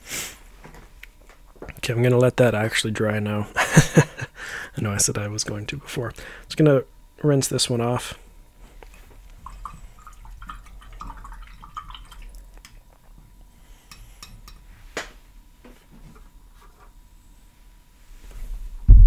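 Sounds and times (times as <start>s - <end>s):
water swishing in a jar: 9.4s - 13.1s.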